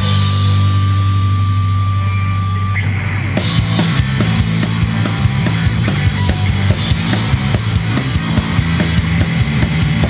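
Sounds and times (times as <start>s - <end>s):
sustained rock chord: 0.0s - 10.0s.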